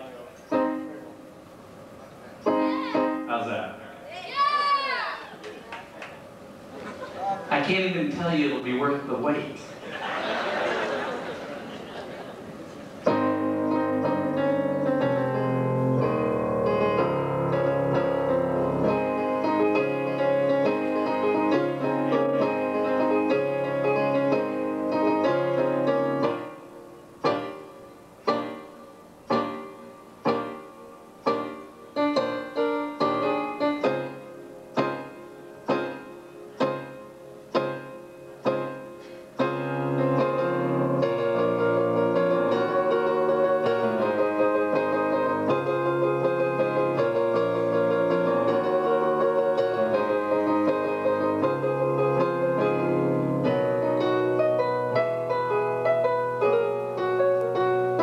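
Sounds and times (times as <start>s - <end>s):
electronic keyboard chords: 0.0s - 3.9s, 12.5s - 58.0s.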